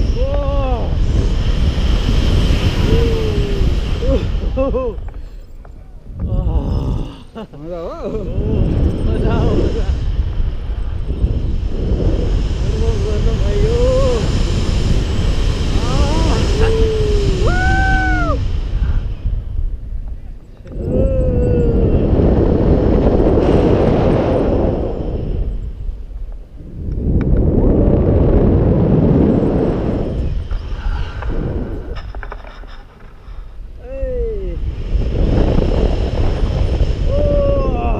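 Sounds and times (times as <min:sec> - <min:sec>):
wind buffeting microphone: 0:00.0 - 0:37.9
voices whooping: 0:15.8 - 0:18.4.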